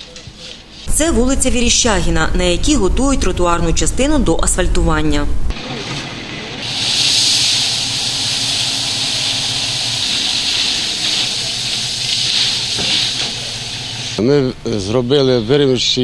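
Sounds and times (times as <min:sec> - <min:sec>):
truck engine running low: 0:05.5 - 0:14.2
gravel pouring: 0:06.6 - 0:14.2.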